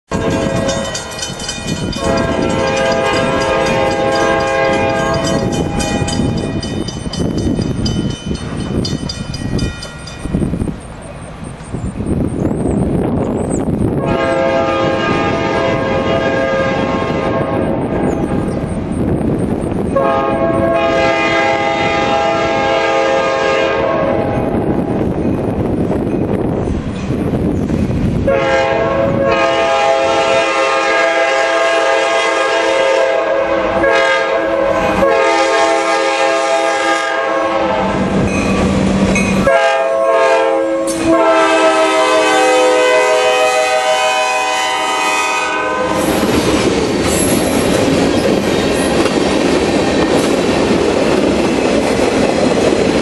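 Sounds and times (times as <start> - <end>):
locomotive air horn chord: 1.9 - 6.4, 14.0 - 17.8, 20.0 - 24.5, 28.3 - 38.1, 39.4 - 46.1.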